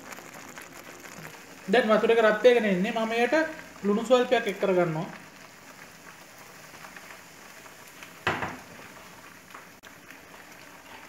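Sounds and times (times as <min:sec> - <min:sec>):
water boiling in a pot: 0:00.0 - 0:11.0.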